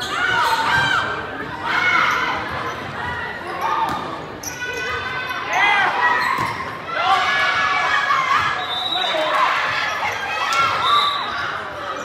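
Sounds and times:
spectators' voices echoing: 0.0 - 12.0
sneakers squeaking on hardwood: 6.1 - 6.8.

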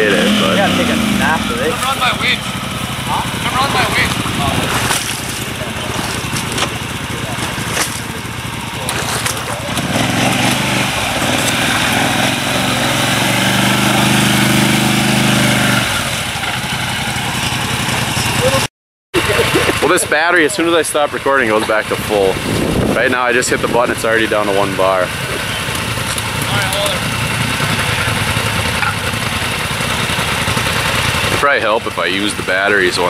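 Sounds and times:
winch droning: 0.0 - 18.7
atv engine running: 0.0 - 33.0.

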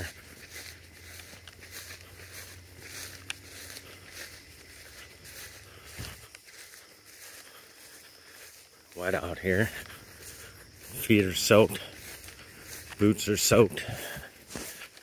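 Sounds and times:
footsteps swishing through grass: 0.0 - 15.0.

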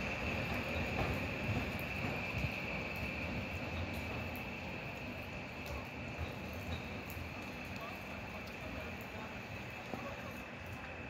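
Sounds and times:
electric train rumbling over tracks: 0.0 - 11.0.

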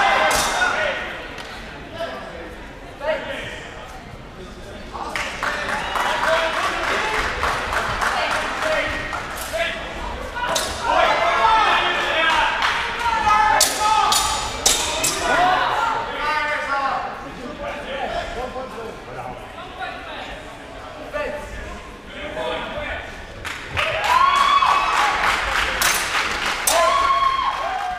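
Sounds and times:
voices calling out in a hall: 0.0 - 27.9
steel swords clashing: 13.6 - 15.4.

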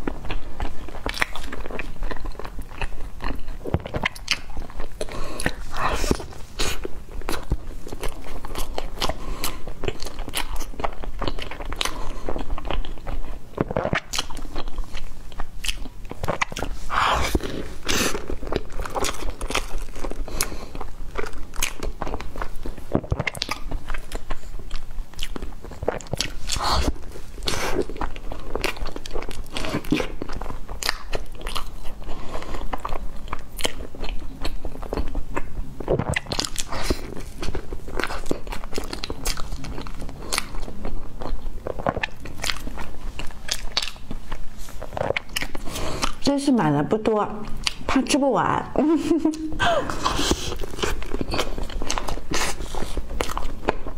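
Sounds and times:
chewing crusty bread: 0.0 - 53.9.

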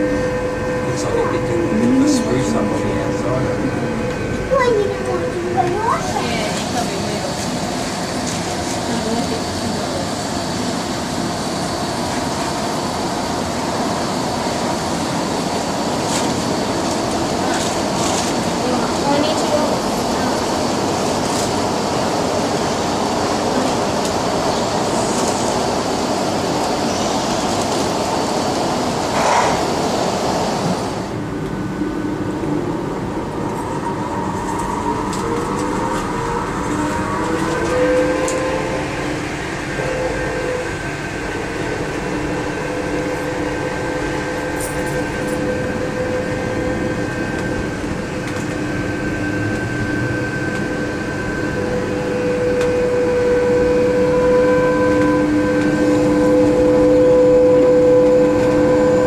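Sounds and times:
monorail drive whine: 0.0 - 59.0
dense rushing noise: 24.2 - 34.3.

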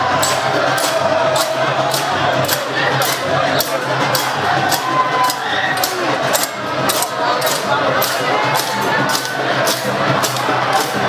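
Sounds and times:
drums playing quick rhythm: 0.0 - 11.0
large crowd noise: 0.0 - 11.0.

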